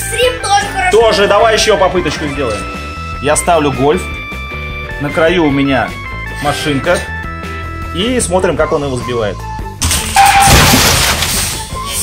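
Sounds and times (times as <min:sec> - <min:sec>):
background music: 0:00.0 - 0:12.0
crash and shatter: 0:09.8 - 0:12.0.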